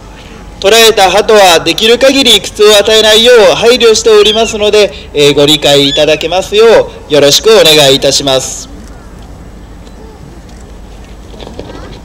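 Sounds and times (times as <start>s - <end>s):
spectators murmuring: 9.5s - 12.0s.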